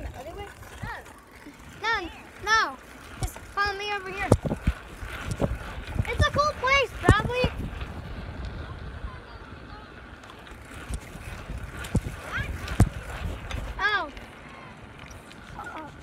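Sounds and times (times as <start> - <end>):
wind noise: 3.0 - 13.9
microphone handling rumble: 4.2 - 9.2.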